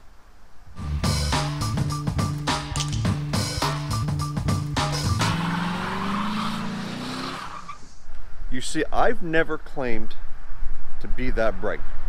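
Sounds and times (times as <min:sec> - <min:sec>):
music with heavy beat: 0:00.8 - 0:05.4
car engine revving: 0:01.3 - 0:07.9
tires squealing: 0:04.8 - 0:08.0.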